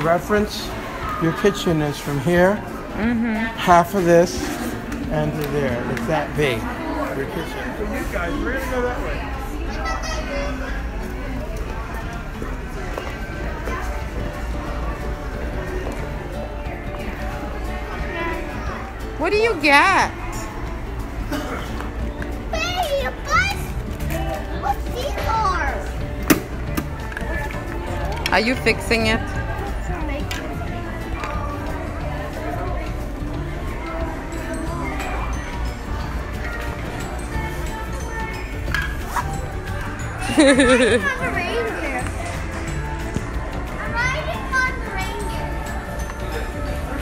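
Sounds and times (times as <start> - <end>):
background music: 0.0 - 47.0
children chattering and squealing: 6.7 - 15.2, 16.2 - 19.4, 20.1 - 26.2, 29.3 - 47.0
toddler laughing: 40.2 - 41.2.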